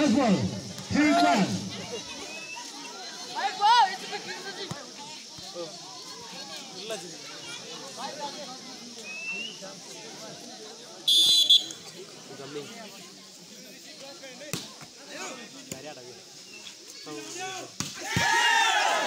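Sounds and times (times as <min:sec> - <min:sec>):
spectators shouting and cheering: 0:00.0 - 0:06.4, 0:17.1 - 0:19.0
crowd chatter: 0:00.0 - 0:19.0
referee whistle: 0:11.0 - 0:11.8.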